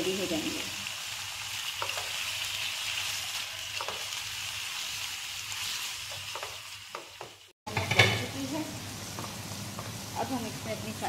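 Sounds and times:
food sizzling in hot oil: 0:00.0 - 0:11.0
spatula tapping and scraping pan: 0:01.8 - 0:02.2, 0:03.7 - 0:04.1, 0:06.0 - 0:08.3.

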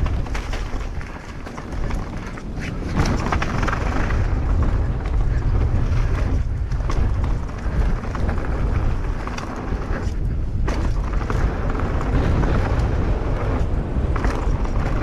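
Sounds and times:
bike clicks and rattles: 0:00.0 - 0:15.0
wind rushing over microphone: 0:00.0 - 0:15.0.

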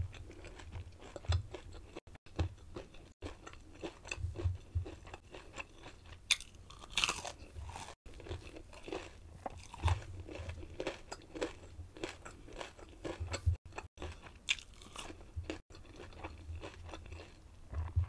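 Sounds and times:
chewing crispy fried food: 0:00.0 - 0:18.0.

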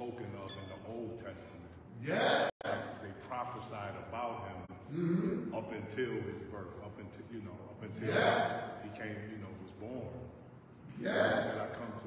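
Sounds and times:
preacher speaking: 0:00.0 - 0:10.2, 0:10.8 - 0:12.0
loud vocal exclamation: 0:02.0 - 0:02.5, 0:07.9 - 0:08.8, 0:10.9 - 0:11.6.

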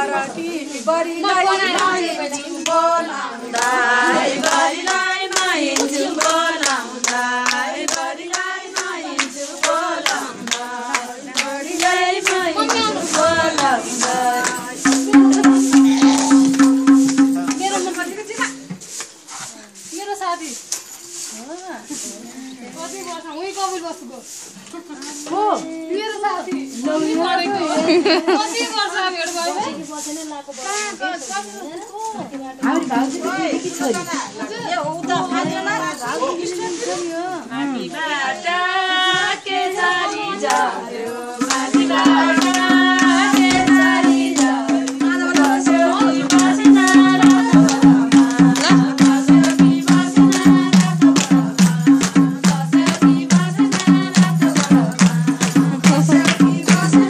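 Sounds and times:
women singing folk song: 0:00.0 - 0:18.8, 0:21.3 - 0:57.0
people talking and calling: 0:00.0 - 0:57.0
steady recording hiss: 0:00.0 - 0:57.0
rhythmic hand clapping: 0:01.3 - 0:19.2, 0:39.0 - 0:57.0.

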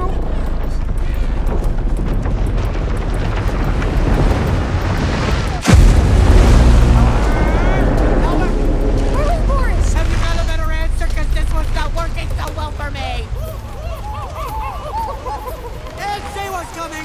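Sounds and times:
deep boom: 0:00.0 - 0:14.1
low rumble: 0:00.0 - 0:16.0
film music: 0:00.0 - 0:17.0.

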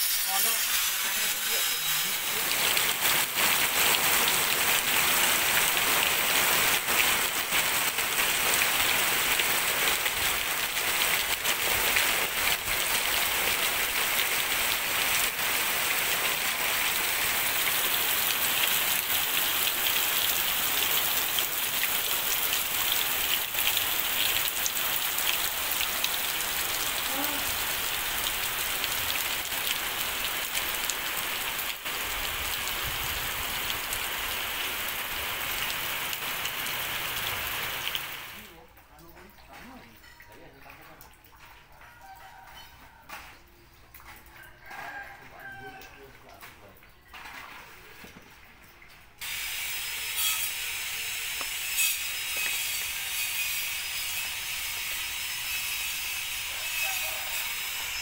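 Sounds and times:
steady rain falling: 0:01.4 - 0:40.2, 0:41.0 - 0:58.0.

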